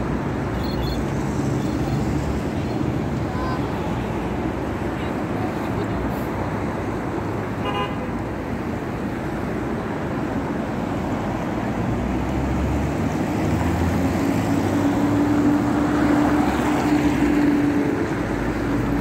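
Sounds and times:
passing cars hum: 0.0s - 19.0s.

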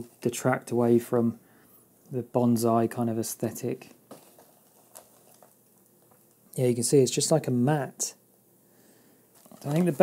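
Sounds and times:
soft rustling of moss: 3.7s - 6.7s, 9.3s - 10.0s.

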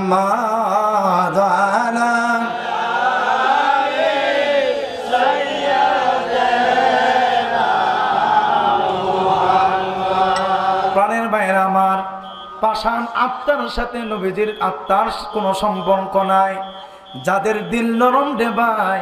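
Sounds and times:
crowd of men chanting: 1.0s - 11.3s.

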